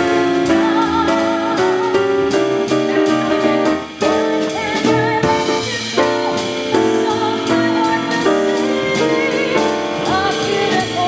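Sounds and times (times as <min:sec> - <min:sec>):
drum kit: 0:00.0 - 0:11.0
piano chords: 0:00.0 - 0:11.0.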